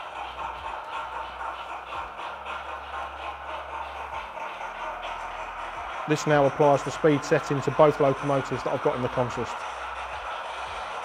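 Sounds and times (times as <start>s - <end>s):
model steam locomotive chuffing: 0.0s - 11.0s.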